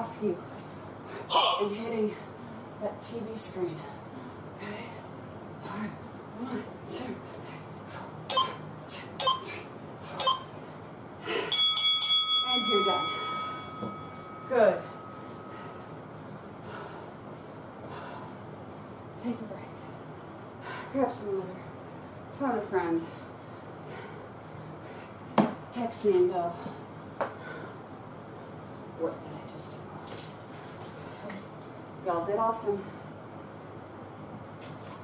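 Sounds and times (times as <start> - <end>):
woman's voice: 1.3 - 4.0, 14.5 - 15.0, 19.2 - 19.8, 20.9 - 21.7, 22.3 - 23.2, 25.7 - 26.8, 32.0 - 33.0
bell-like round timer ringing: 11.5 - 15.5.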